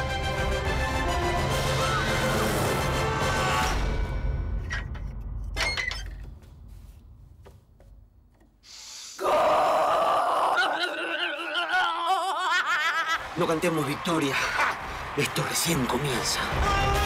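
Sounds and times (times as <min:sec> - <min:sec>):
trailer music: 0:00.0 - 0:05.6
laughter: 0:10.7 - 0:13.2.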